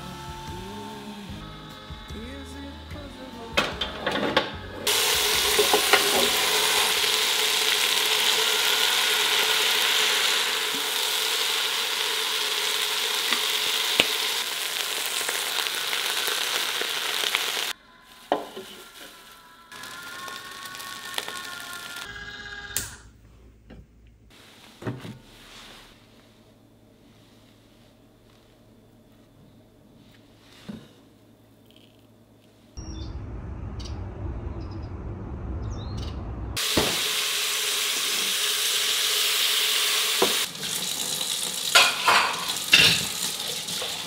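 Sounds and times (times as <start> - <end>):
rice sizzling in a pan: 4.9 - 22.1, 36.6 - 44.0.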